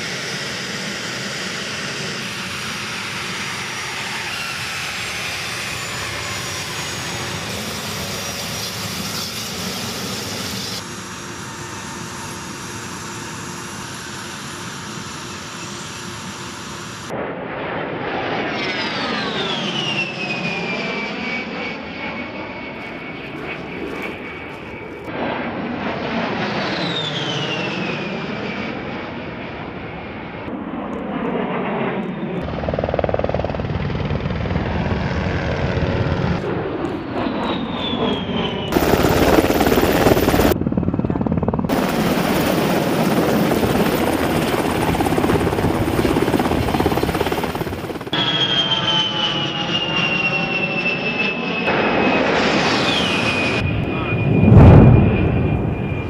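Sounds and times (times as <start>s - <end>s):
jet engines whining: 0.0s - 56.0s.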